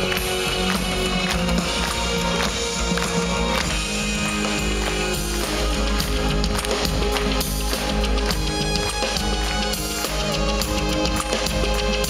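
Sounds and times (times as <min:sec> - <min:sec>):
live synth-pop band playing: 0:00.0 - 0:12.0.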